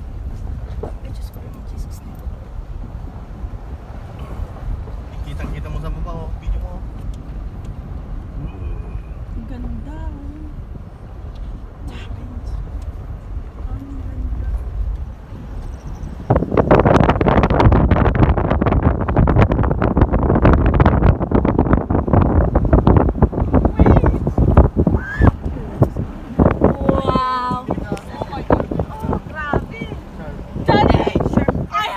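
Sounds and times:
car cabin road rumble: 0.0 - 31.9
wind buffeting microphone: 0.0 - 31.9.

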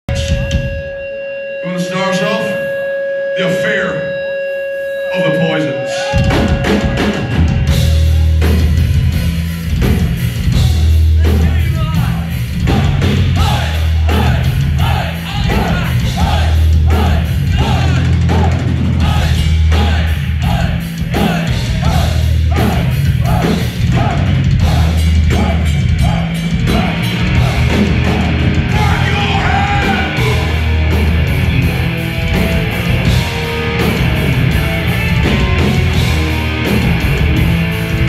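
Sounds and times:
heavy metal band playing live: 0.1 - 38.0.

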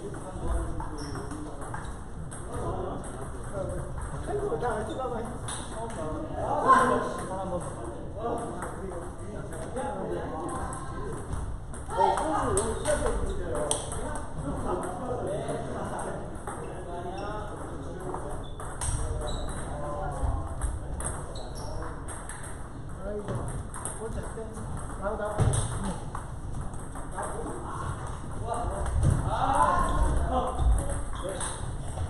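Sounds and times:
table tennis balls clicking: 0.5 - 6.1, 10.4 - 15.0, 20.6 - 27.6
people talking: 27.1 - 31.6.

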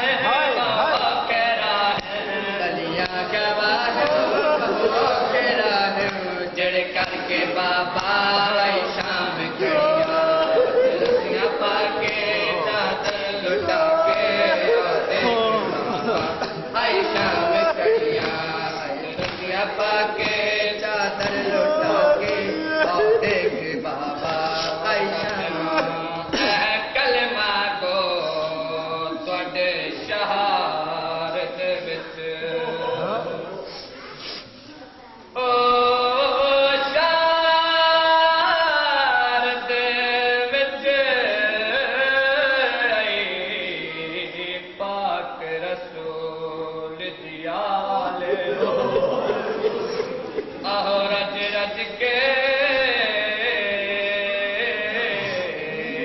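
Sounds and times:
men chanting a lament: 0.0 - 33.7, 35.3 - 56.0.

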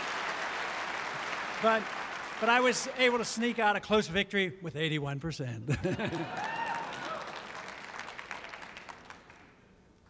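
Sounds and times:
audience applauding: 0.0 - 3.6, 6.0 - 9.6.

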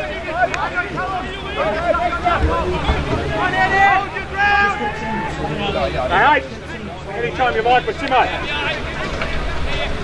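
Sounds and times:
background chatter: 0.0 - 10.0
spectators talking and calling out: 0.0 - 10.0.

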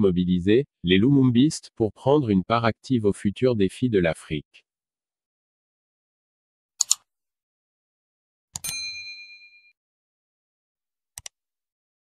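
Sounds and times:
mouse click: 6.8 - 7.0, 11.2 - 11.4
bright bell ding: 8.6 - 9.8.

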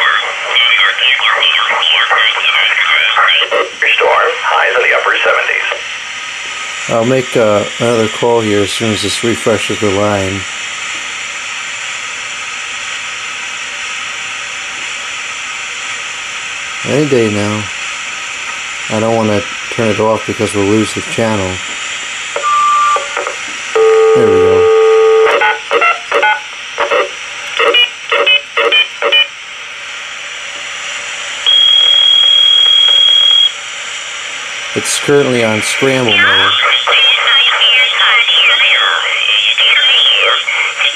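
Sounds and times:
scrambled voice transmission: 0.0 - 6.0, 6.9 - 10.4, 16.9 - 17.7, 18.9 - 21.7, 24.2 - 24.7, 25.3 - 29.3, 34.7 - 40.9
radio static hiss: 0.0 - 40.9
steady high tone: 23.8 - 25.5, 31.4 - 33.6.

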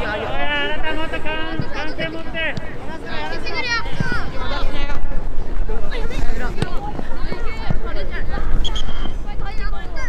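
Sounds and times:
people calling and shouting: 0.0 - 10.0.

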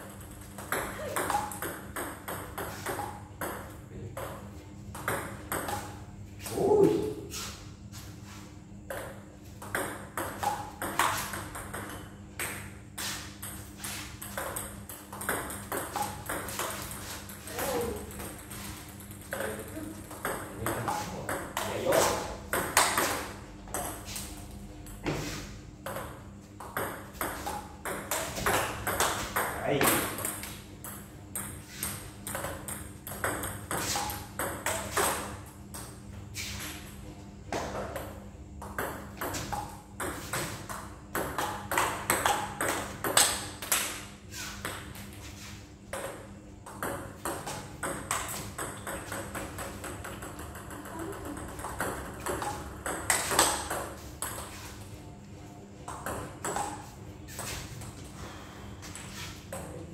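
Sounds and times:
table tennis ball hits: 0.0 - 7.0, 8.9 - 24.3, 25.8 - 35.9, 37.5 - 45.1, 45.9 - 54.7, 55.9 - 57.6.

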